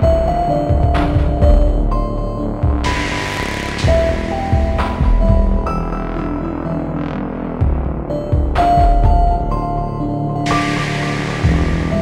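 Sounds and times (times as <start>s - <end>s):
throbbing synth bass: 0.0s - 9.5s, 10.5s - 12.0s.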